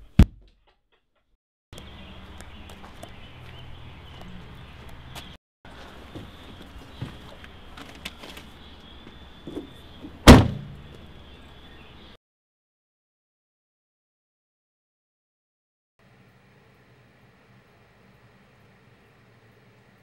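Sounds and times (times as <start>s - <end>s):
bumps and knocks: 9.5s - 10.9s
loud sharp thud: 10.3s - 10.8s.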